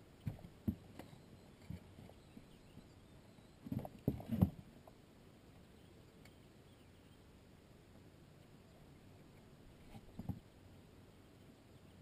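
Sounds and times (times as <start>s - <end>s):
hollow knocks on a boat: 0.2s - 0.9s.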